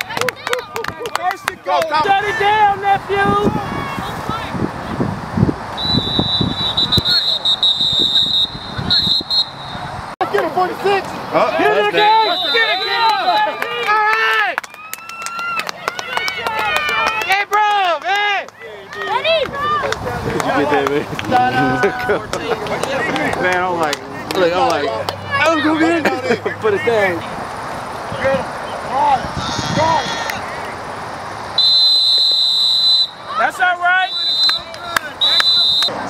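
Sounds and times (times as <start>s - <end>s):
referee's whistle blast: 5.8s - 9.8s, 12.0s - 13.1s, 31.6s - 33.3s, 34.0s - 35.9s
people shouting: 11.4s - 14.6s, 15.3s - 23.3s, 24.4s - 26.0s, 28.9s - 30.6s, 31.6s - 35.9s.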